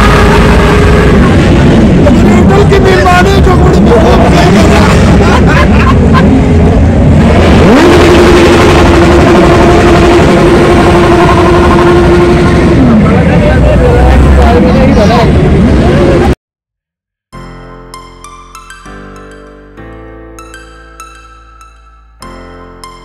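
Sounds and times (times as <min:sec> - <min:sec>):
engine revving high: 0:00.0 - 0:02.2, 0:06.2 - 0:16.3
vehicle traffic: 0:00.0 - 0:16.4.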